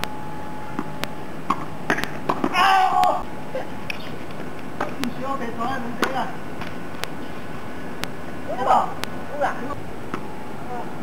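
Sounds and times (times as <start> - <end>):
tennis ball bouncing and hits: 0.8 - 2.6.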